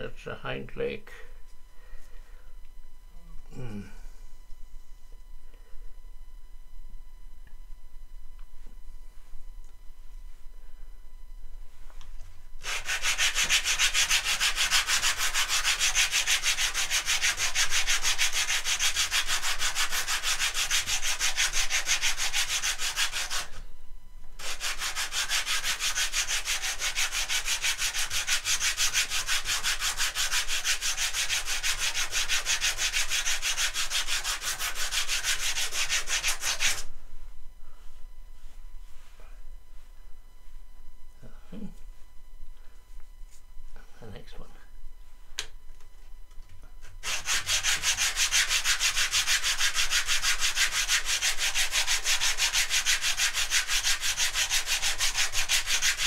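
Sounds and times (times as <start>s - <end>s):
wooden block sanding on sandpaper: 12.6s - 23.6s, 24.4s - 36.9s, 47.0s - 56.0s.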